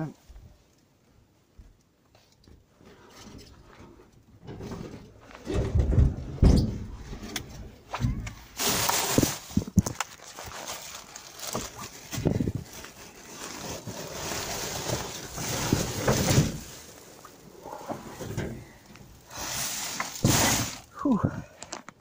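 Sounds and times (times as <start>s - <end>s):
plastic bags rustling and crinkling: 7.7s - 22.0s.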